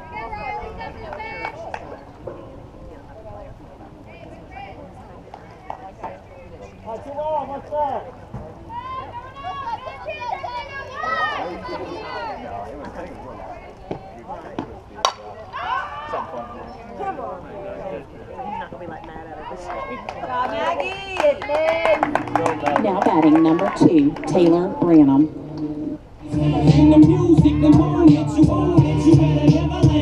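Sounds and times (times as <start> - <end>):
players calling and cheering: 0.0 - 30.0.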